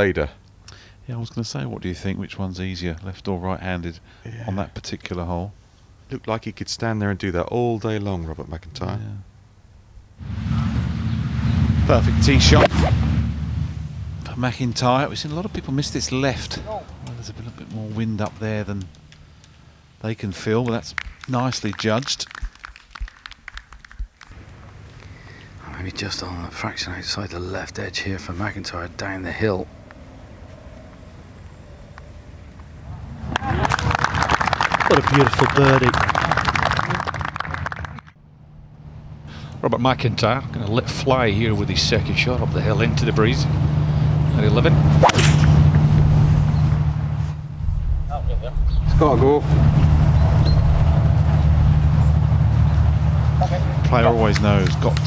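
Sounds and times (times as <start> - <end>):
wind buffeting microphone: 47.5 - 53.2.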